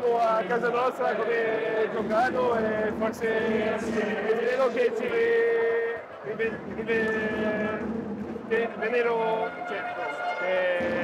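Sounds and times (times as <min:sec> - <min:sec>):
man talking: 0:00.0 - 0:07.9, 0:08.5 - 0:11.0.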